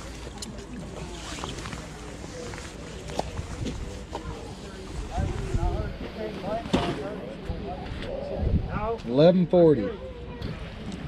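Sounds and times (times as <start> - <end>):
wind rumble on microphone: 3.2 - 6.2, 7.4 - 9.0.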